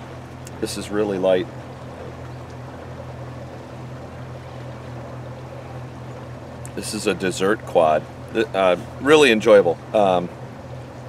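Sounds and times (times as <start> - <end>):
boat motor running: 0.0 - 11.0.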